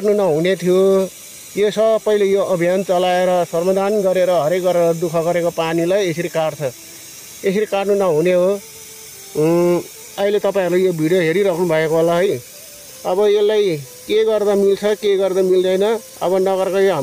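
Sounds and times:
person speaking: 0.0 - 17.0
water hissing from a cut pipe: 0.0 - 17.0.

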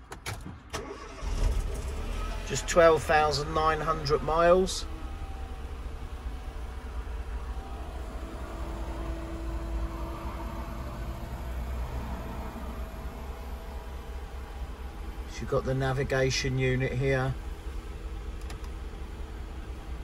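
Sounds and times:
car engine idling: 0.8 - 20.0.

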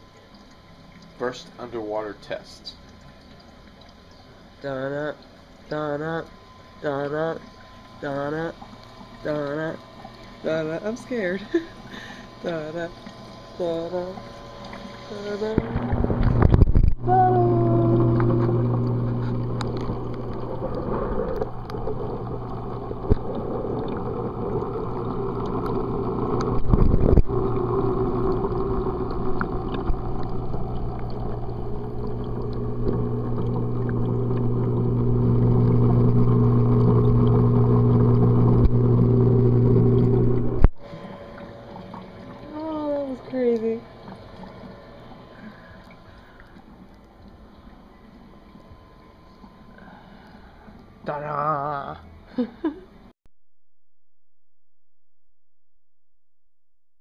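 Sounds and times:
aquarium pump hum underwater: 0.0 - 53.1
muffled water wash: 12.7 - 49.6.

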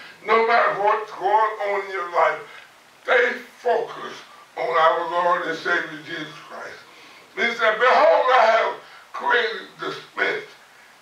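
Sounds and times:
man preaching: 0.0 - 10.6.

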